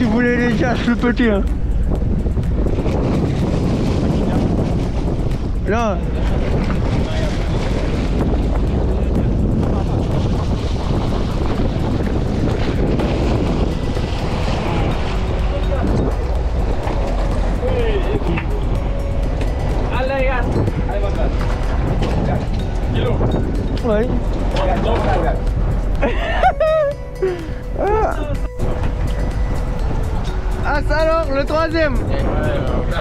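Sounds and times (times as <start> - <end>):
water splashing at hull: 0.0 - 26.2
boat engine rumble: 0.0 - 33.0
wind buffeting microphone: 0.0 - 33.0.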